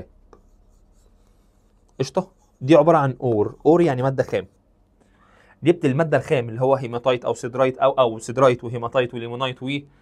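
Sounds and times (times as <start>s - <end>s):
stylus scratching and tapping screen: 0.0s - 4.8s.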